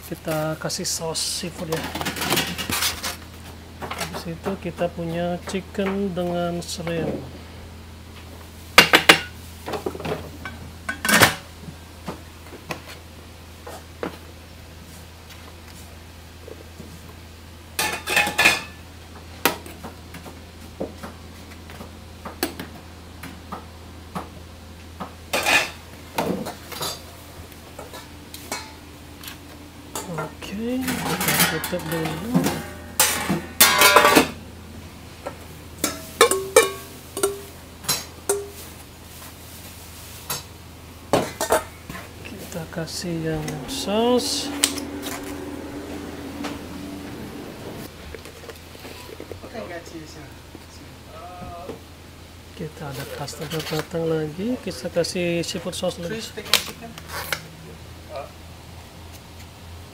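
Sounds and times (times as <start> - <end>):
steady low hum: 0.0 - 59.9
metal spoons scraping steel pans: 30.0 - 34.4, 35.8 - 38.6
pan lids set down: 30.8 - 34.4.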